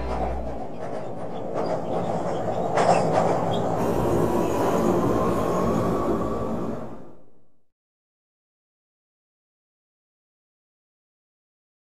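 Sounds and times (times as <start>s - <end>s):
wheel squeal: 0.0s - 7.0s
subway train rumbling on rails: 0.0s - 7.7s.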